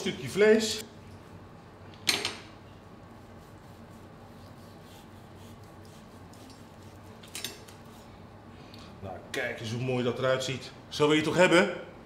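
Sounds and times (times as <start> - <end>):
knife slicing meat: 3.2 - 8.1.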